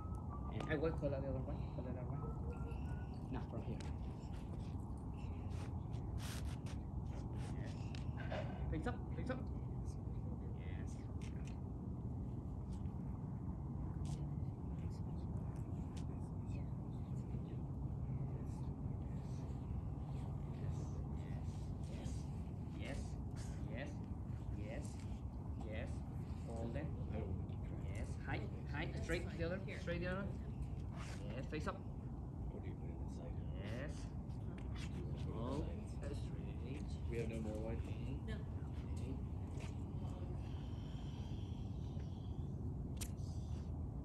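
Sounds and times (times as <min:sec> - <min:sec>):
faint voices: 0:00.0 - 0:44.0
low background rumble: 0:00.0 - 0:44.0.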